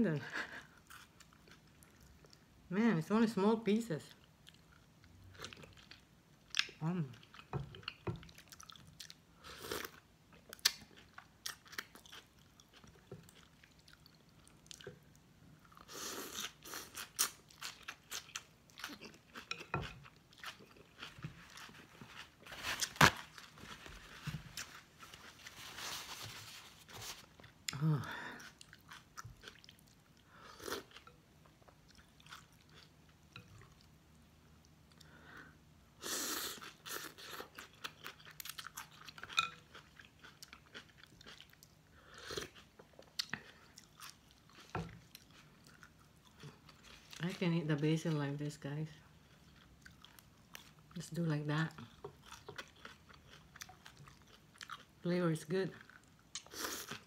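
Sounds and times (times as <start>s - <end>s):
chewing and crunching: 4.4s - 25.4s, 28.4s - 33.9s, 36.6s - 47.4s, 49.2s - 51.0s, 51.6s - 55.0s.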